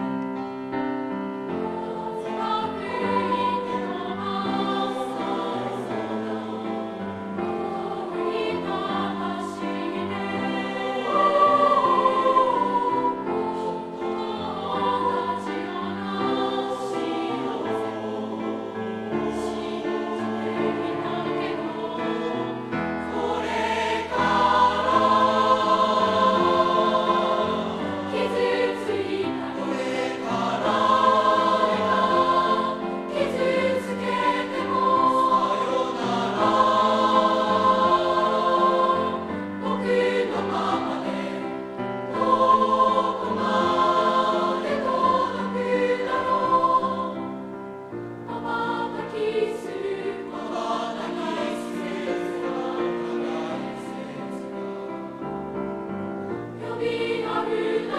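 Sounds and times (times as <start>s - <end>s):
choir singing in harmony: 0.0s - 57.9s
grand piano accompaniment: 0.0s - 57.9s.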